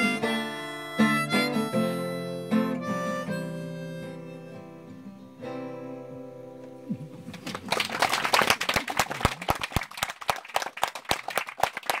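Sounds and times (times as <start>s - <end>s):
audience applauding: 6.9s - 12.0s
person clapping loudly: 6.9s - 12.0s.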